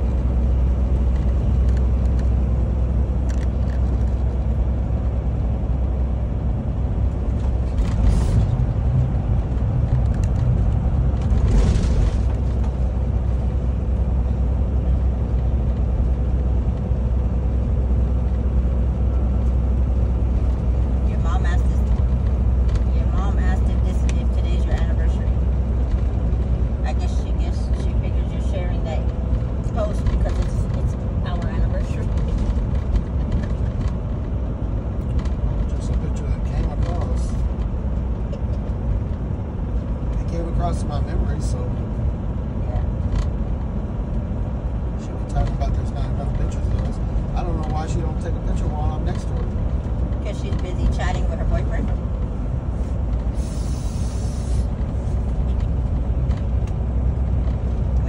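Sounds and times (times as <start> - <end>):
truck engine and road noise: 0.0 - 58.0.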